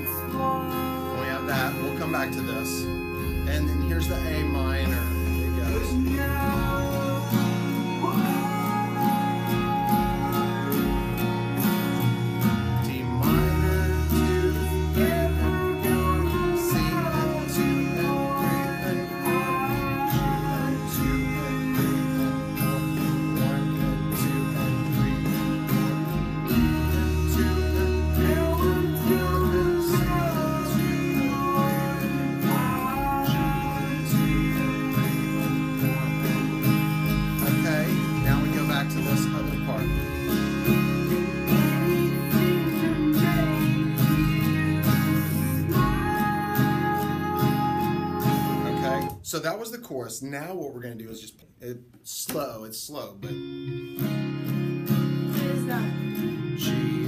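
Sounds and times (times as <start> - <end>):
acoustic guitar strummed slowly: 0.0 - 49.6, 51.8 - 57.0.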